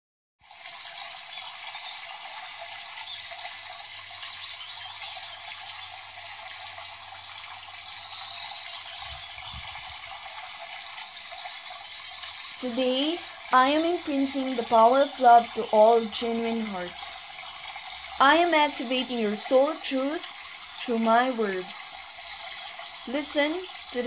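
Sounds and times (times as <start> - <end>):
flowing water: 0.4 - 24.0
high bird chirps: 7.2 - 11.0.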